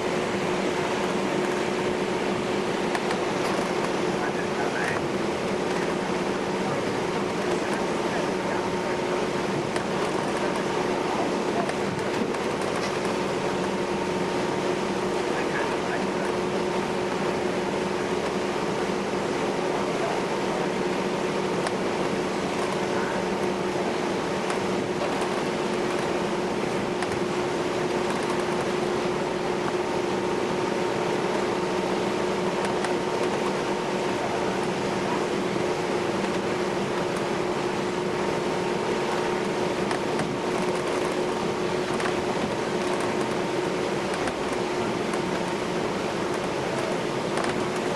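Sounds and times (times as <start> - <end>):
ferry engine drone: 0.0 - 47.9.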